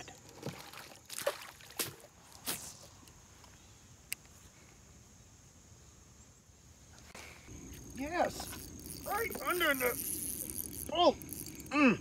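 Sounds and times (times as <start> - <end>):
water dripping and splashing: 0.2 - 2.1.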